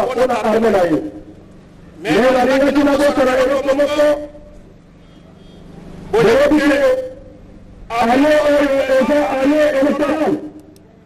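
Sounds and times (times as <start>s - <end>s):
man's loud voice: 0.0s - 1.3s, 2.0s - 4.5s, 6.1s - 10.6s
faint background hum: 0.0s - 11.0s.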